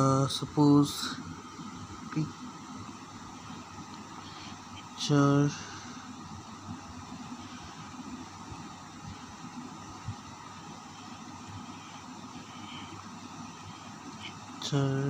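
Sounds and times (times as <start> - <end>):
room noise hiss: 0.0 - 15.0.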